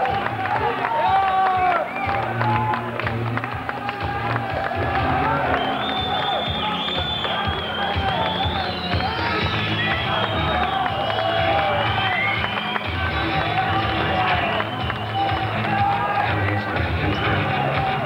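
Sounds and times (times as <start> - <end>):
audience calling out and cheering: 0.0 - 18.0
music playing: 0.0 - 18.0.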